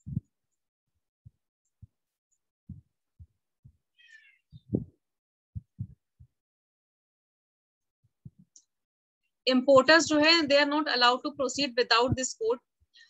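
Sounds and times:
soft dull low thumps: 0.0 - 0.3, 2.7 - 3.8, 4.5 - 5.0, 5.6 - 6.4, 8.2 - 8.6, 9.5 - 12.4.

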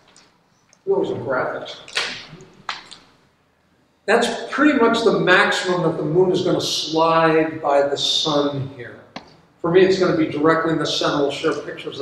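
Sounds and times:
paper snaps: 1.9 - 3.0.

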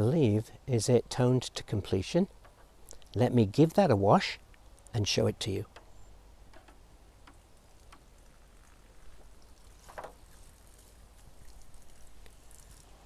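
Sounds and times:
water dripping from lifted strip: 6.5 - 13.0
water dripping in tray: 6.6 - 12.7.

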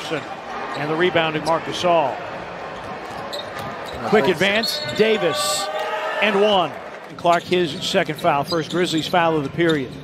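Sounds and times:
low hum of arena ambience: 0.0 - 10.0.

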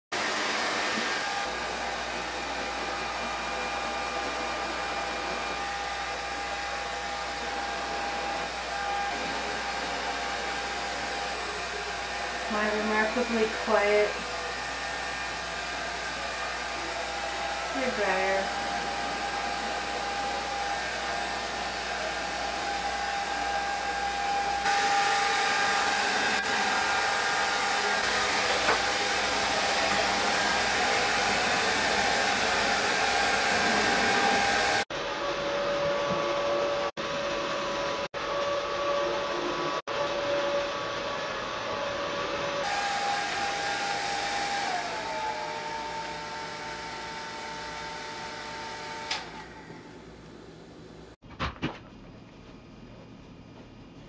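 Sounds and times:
hair dryer blowing with whine: 0.1 - 51.2.

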